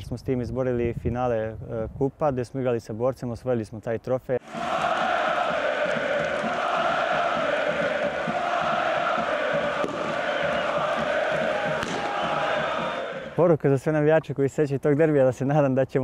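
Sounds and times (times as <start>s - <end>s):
stadium crowd chanting: 4.4s - 13.4s.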